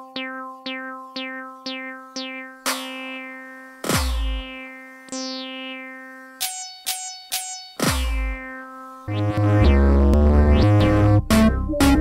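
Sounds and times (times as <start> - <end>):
synth plucks: 0.0 - 12.0.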